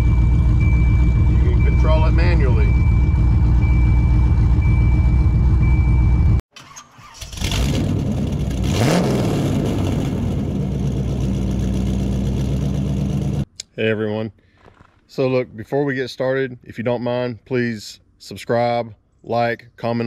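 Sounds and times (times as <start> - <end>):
car engine idling: 0.0 - 6.4, 9.4 - 13.4
engine starting and revving: 6.5 - 13.4.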